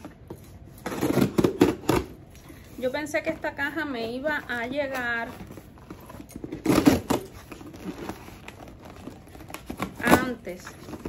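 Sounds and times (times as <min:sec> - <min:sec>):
cardboard rustling: 0:00.0 - 0:11.0
tape tearing: 0:00.7 - 0:02.2, 0:04.4 - 0:11.0
scissors slitting packing tape: 0:06.2 - 0:11.0.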